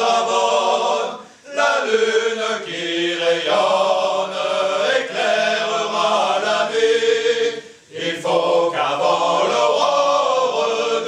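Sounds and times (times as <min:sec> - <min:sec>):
male vocal ensemble singing: 0:00.0 - 0:11.0.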